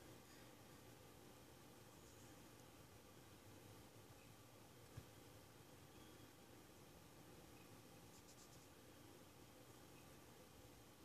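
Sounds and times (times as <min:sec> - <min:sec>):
fingertip scratching powder: 0:08.1 - 0:08.8.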